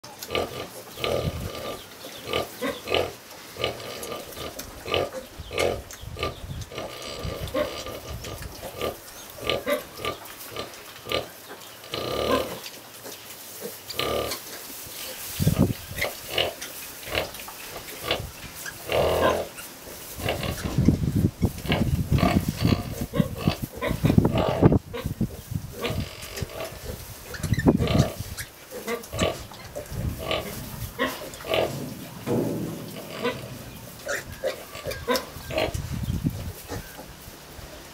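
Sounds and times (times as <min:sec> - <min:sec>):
pigs grunting and squeaking: 0:00.0 - 0:37.2.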